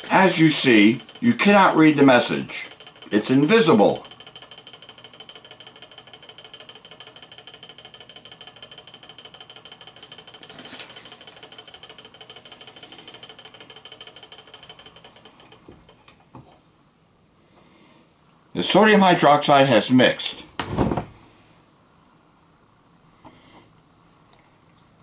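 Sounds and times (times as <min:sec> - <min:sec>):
magnetic stirrer humming: 0:00.0 - 0:16.7.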